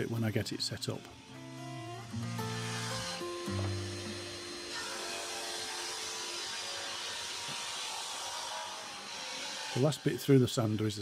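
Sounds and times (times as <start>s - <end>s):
background music with held notes: 0.0s - 6.8s
drum sander rasping: 2.1s - 10.2s.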